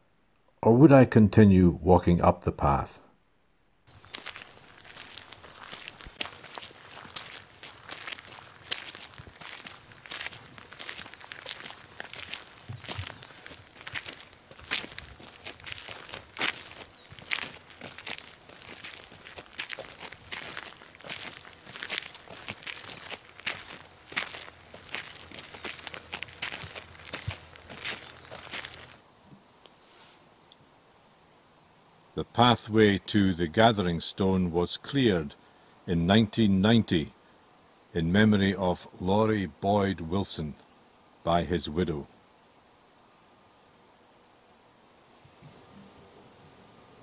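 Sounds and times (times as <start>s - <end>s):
footsteps on gritty tarmac: 3.9s - 29.0s.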